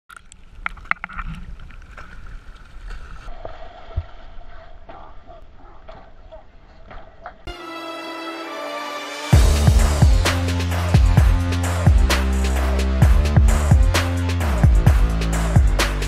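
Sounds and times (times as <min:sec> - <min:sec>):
music: 0:07.5 - 0:16.0.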